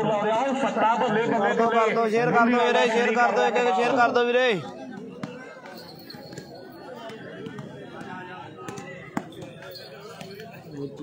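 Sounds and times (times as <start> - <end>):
spectators chattering: 0.0 - 11.0.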